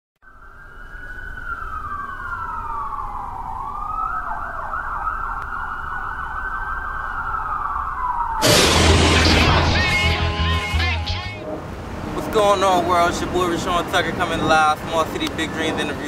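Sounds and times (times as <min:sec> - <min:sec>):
emergency vehicle siren: 0:00.2 - 0:14.3
low rumble: 0:08.4 - 0:11.8.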